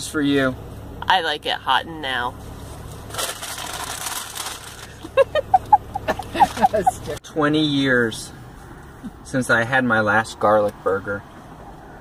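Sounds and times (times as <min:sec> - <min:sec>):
paper bag crinkling: 0:03.1 - 0:05.0.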